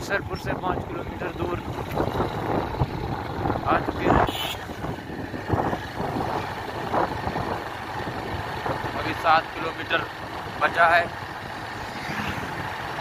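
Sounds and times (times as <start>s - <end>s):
motorcycle riding: 0.0s - 13.0s
road and wind noise: 0.0s - 13.0s.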